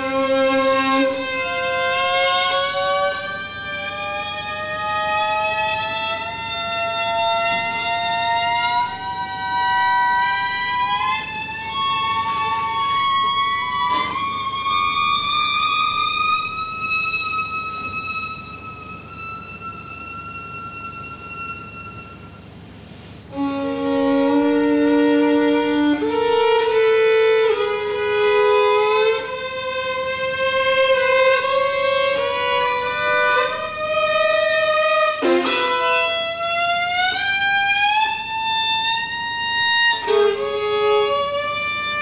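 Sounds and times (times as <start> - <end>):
violin gliding upward: 0.0 - 22.3, 23.3 - 42.0.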